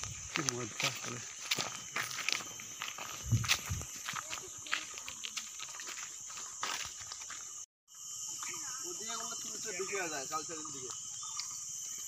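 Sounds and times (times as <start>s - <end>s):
footsteps on gravel and dry leaves: 0.0s - 7.6s.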